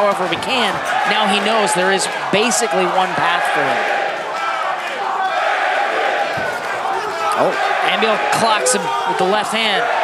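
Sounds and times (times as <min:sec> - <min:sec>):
crowd voices: 0:00.1 - 0:09.9.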